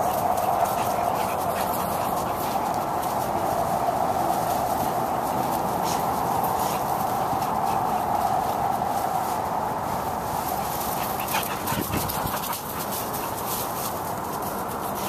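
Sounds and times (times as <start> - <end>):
dogs growling and vocalizing: 0.0 - 2.9, 10.6 - 13.4
paws scuffling through mulch: 0.0 - 15.0.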